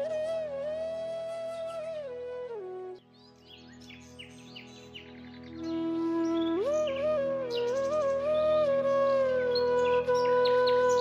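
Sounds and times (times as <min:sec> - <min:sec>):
flute long low note: 0:00.0 - 0:03.1, 0:05.5 - 0:11.0.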